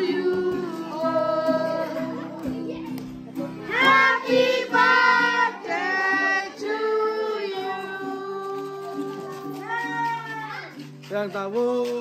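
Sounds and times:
children singing together: 0:00.0 - 0:03.0, 0:03.6 - 0:09.6
high child's voice singing: 0:00.0 - 0:10.8.

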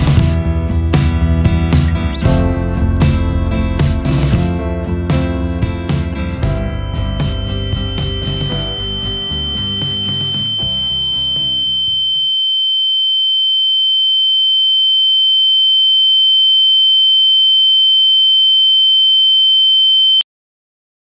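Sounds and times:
closing music: 0:00.0 - 0:11.8
high-pitched electronic tone: 0:06.5 - 0:13.9.

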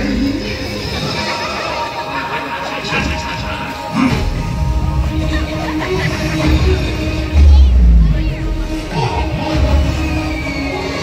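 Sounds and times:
film music over loudspeakers: 0:00.0 - 0:11.0.

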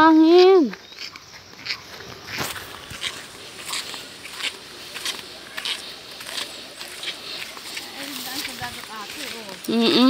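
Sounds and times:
flip-flop footsteps on gritty dirt: 0:00.0 - 0:10.0.

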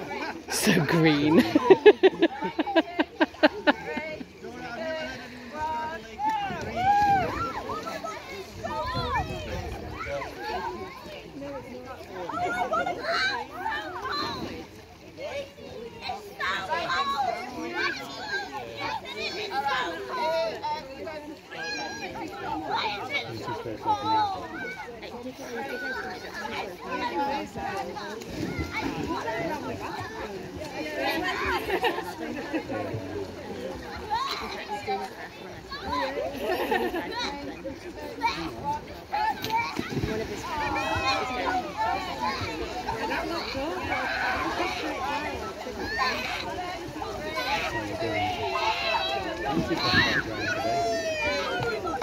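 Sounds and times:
children calling and chattering: 0:00.0 - 0:52.0
children shouting: 0:06.2 - 0:11.2, 0:38.2 - 0:52.0.

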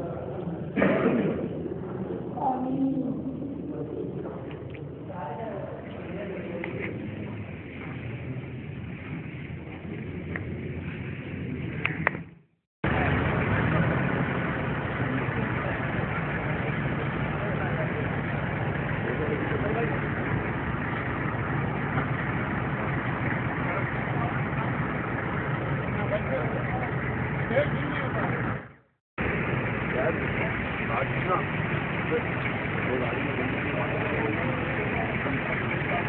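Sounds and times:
car engine idling: 0:05.7 - 0:36.0
men talking: 0:12.9 - 0:20.5, 0:22.8 - 0:24.9, 0:25.5 - 0:28.6, 0:29.8 - 0:36.0.

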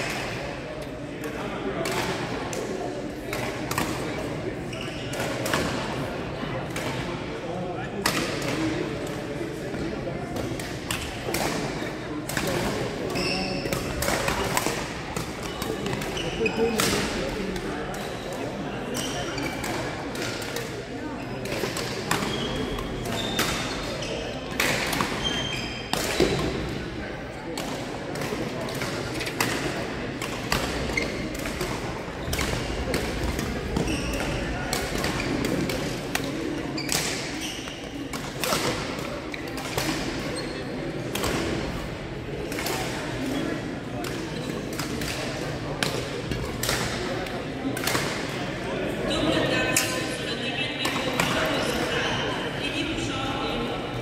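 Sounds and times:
murmur of voices: 0:00.0 - 0:54.0
shoes squeaking on court floor: 0:04.7 - 0:05.2, 0:13.0 - 0:14.5, 0:15.4 - 0:17.0, 0:21.6 - 0:26.6, 0:30.7 - 0:40.8
rackets striking shuttlecock: 0:27.6 - 0:40.3, 0:44.0 - 0:48.4.

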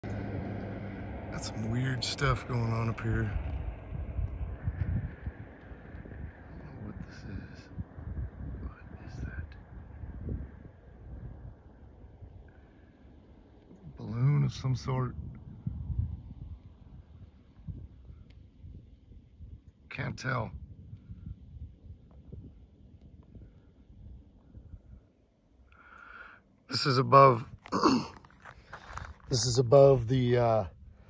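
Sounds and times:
wind buffeting microphone: 0:00.0 - 0:25.7.

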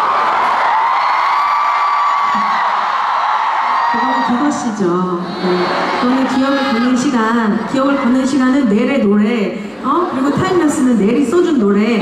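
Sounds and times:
crowd cheering and screaming: 0:00.0 - 0:08.2
woman speaking through microphone: 0:03.9 - 0:12.0.

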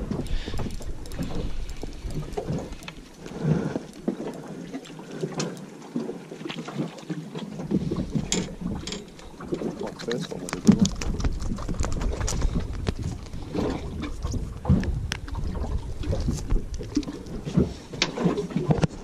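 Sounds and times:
water against boat hull: 0:00.0 - 0:19.0
wind buffeting microphone: 0:10.5 - 0:19.0.

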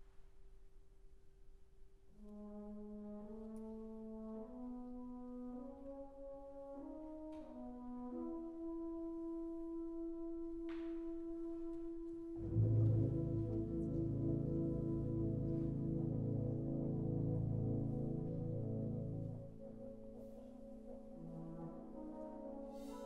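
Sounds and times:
brass band playing: 0:02.2 - 0:23.0.

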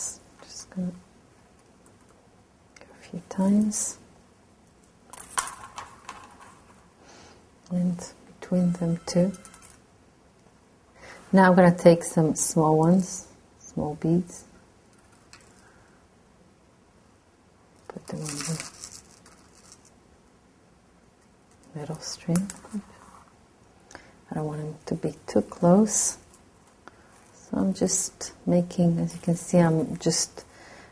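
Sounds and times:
beads and metal string rustling: 0:04.8 - 0:06.9, 0:08.4 - 0:09.9, 0:14.8 - 0:15.7, 0:17.8 - 0:20.0
beads clicking: 0:08.9 - 0:09.8, 0:18.1 - 0:20.0.

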